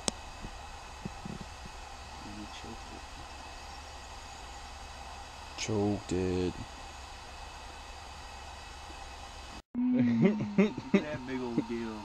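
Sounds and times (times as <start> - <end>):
steady hiss: 0.0 - 9.6, 10.2 - 12.0
low hum: 0.0 - 12.0.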